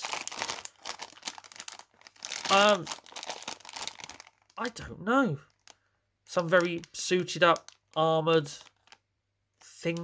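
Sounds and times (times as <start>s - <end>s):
plastic packet crinkling: 0.0s - 10.0s.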